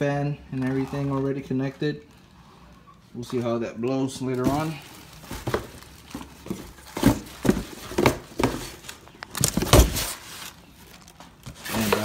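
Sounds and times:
plastic packing crinkling: 0.4s - 12.0s.

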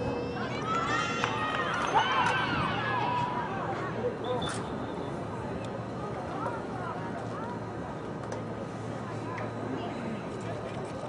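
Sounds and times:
murmur of background noise: 0.0s - 11.0s.

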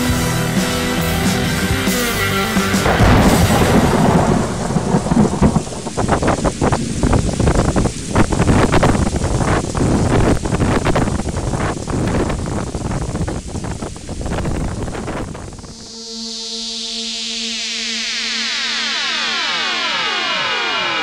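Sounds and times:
music: 0.0s - 4.6s, 15.9s - 21.0s
crackling rain: 0.0s - 21.0s
thunderclap: 2.7s - 15.8s
rumbling thunder: 2.8s - 15.8s.

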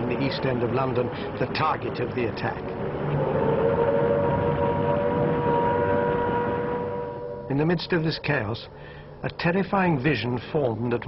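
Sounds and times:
dense rumbling noise: 0.0s - 10.0s
air-raid siren: 2.8s - 8.5s.

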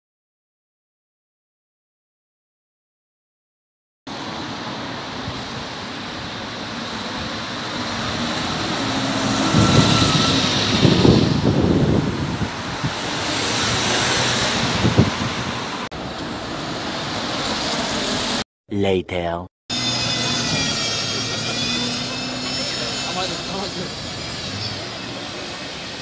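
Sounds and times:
passing vehicle engine rumble: 4.1s - 18.4s, 19.7s - 26.0s
road traffic rush: 4.1s - 18.4s, 19.2s - 26.0s.

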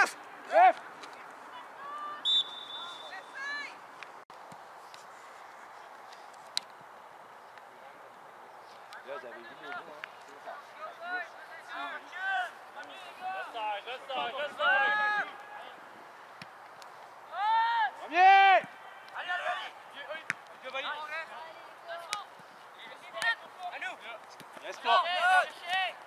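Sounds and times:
young players shouting: 17.3s - 19.8s, 24.7s - 26.0s.

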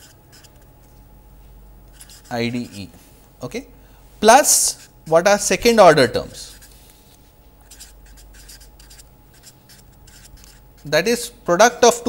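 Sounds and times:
marker writing on paper: 0.0s - 0.7s, 1.9s - 3.0s, 6.4s - 6.8s, 7.6s - 11.0s.

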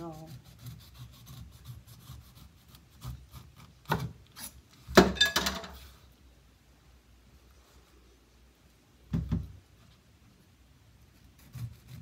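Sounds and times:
knife sawing through pineapple skin: 0.0s - 4.6s, 11.2s - 12.0s.

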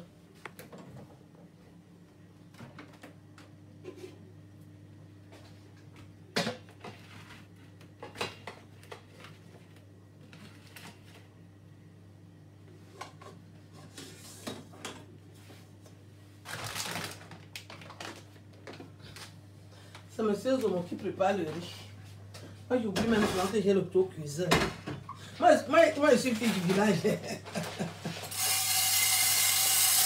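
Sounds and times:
steady low hum: 18.3s - 26.4s.

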